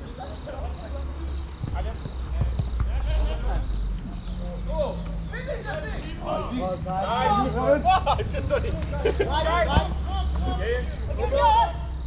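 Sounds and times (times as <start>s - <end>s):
players shouting: 1.7s - 12.0s.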